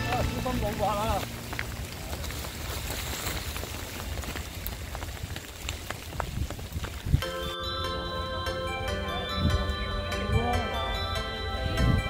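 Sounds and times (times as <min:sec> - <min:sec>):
background music with held notes: 0:00.0 - 0:01.2, 0:07.2 - 0:12.0
steady rain: 0:00.0 - 0:07.3.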